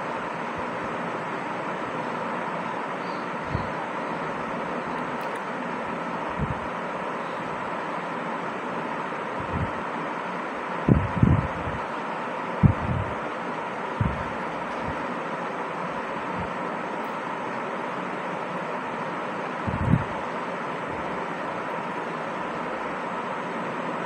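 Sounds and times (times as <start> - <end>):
faint steady tone: 0.0 - 24.0.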